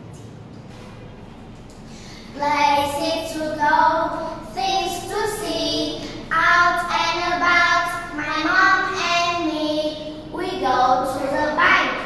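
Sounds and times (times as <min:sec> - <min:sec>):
girls singing children's song: 0:01.9 - 0:12.0.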